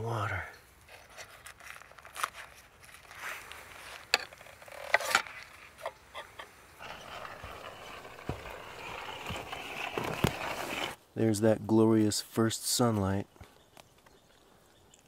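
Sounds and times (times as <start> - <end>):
paper rustling: 0.9 - 4.1, 6.9 - 11.0.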